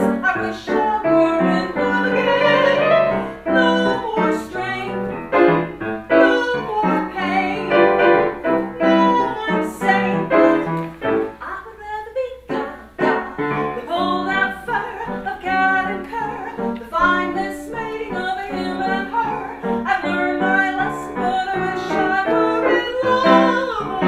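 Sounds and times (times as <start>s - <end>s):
instrumental accompaniment: 0.0s - 11.4s
woman singing: 0.0s - 24.0s.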